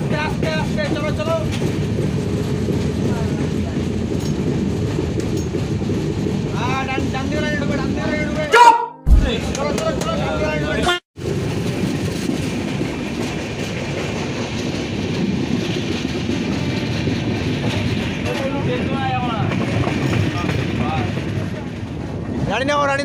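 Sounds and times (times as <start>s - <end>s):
train wheels rolling on rails: 0.0s - 8.4s, 11.2s - 23.0s
wind: 0.0s - 23.0s.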